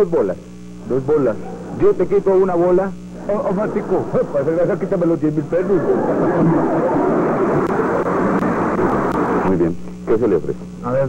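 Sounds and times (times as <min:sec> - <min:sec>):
studio audience laughing: 0:03.2 - 0:09.4.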